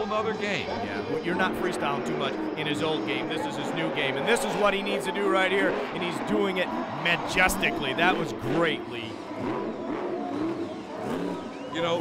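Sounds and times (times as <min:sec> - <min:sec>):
truck engine revving: 0:00.9 - 0:12.0.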